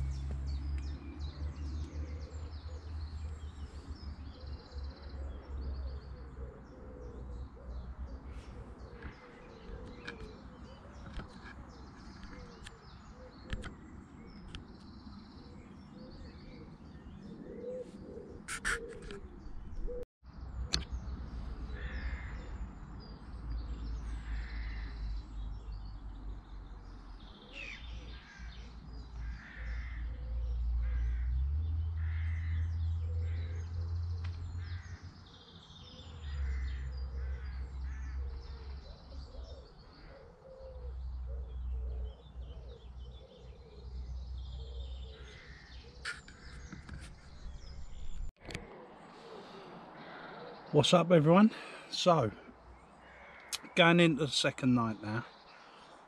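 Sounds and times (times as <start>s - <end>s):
birds calling: 0.0s - 56.0s
short caw-like calls: 21.8s - 22.5s, 24.2s - 25.0s, 29.2s - 30.2s, 32.0s - 32.6s, 36.4s - 38.3s, 53.0s - 53.6s.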